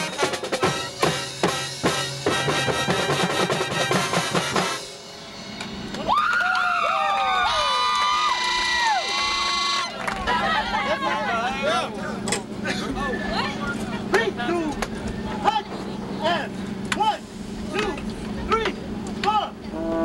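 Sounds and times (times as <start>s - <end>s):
marching drumline: 0.0s - 5.0s
brass long notes with scoops: 19.6s - 20.0s.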